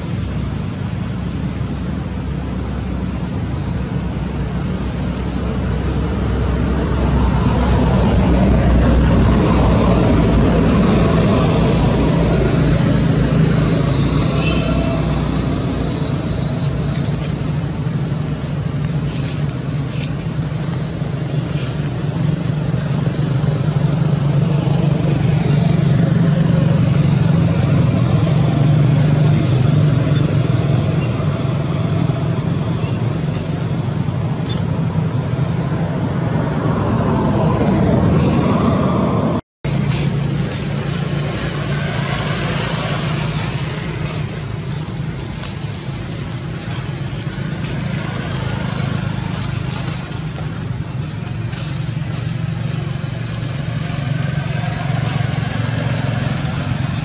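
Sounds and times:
constant rushing noise: 0.0 - 57.0.

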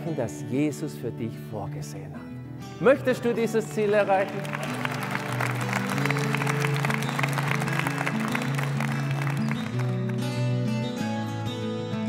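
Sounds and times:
instrumental music with held chords: 0.0 - 12.0
audience applauding: 3.3 - 10.6.

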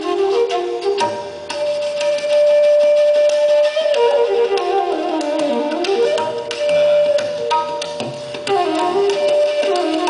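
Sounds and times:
bamboo flute sliding in pitch: 0.0 - 10.0
tabla strokes: 0.0 - 10.0.

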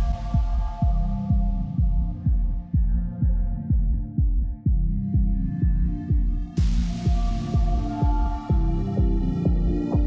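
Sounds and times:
kick drum beat: 0.0 - 10.0.

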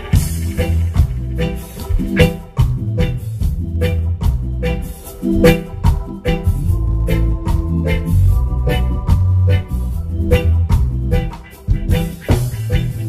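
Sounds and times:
electric guitar: 0.0 - 13.0
heavy bass line: 0.0 - 13.0
live reggae band playing: 0.0 - 13.0.

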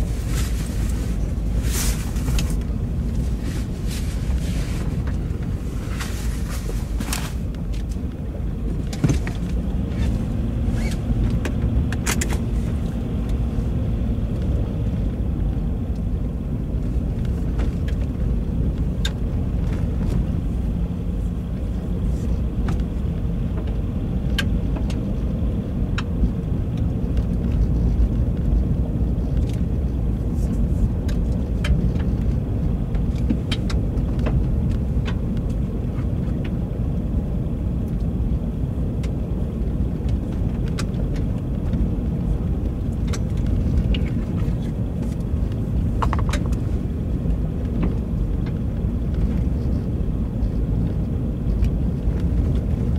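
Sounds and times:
tyres rumbling on dirt road: 0.0 - 52.9.

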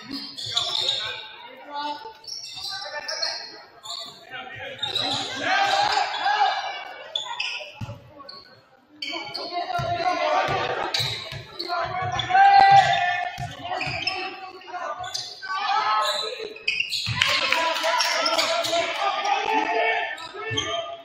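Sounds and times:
sneaker squeaks: 0.0 - 6.3, 7.1 - 19.0, 20.1 - 21.0
players shouting: 4.8 - 7.1, 9.5 - 21.0.

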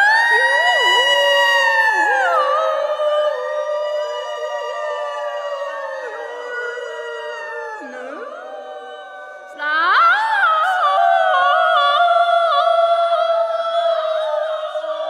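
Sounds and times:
women singing wordless long notes: 0.0 - 15.0.

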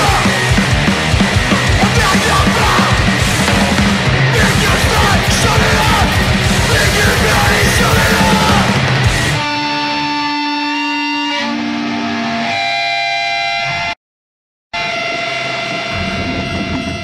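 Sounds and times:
heavy low end: 0.0 - 9.5, 14.8 - 17.0
distorted electric guitar chords: 0.0 - 14.0, 14.8 - 17.0.

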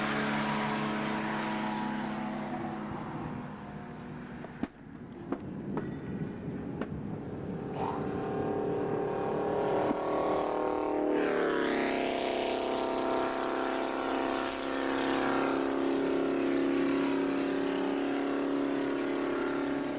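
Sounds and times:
racing car engines running hard: 0.0 - 5.5, 6.3 - 19.9.

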